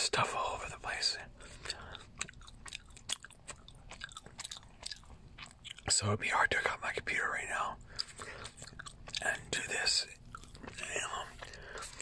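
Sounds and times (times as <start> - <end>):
soft whispering: 0.0 - 2.0, 5.9 - 7.9, 9.2 - 12.0
gum chewing with wet smacks: 1.4 - 6.0, 7.8 - 12.0.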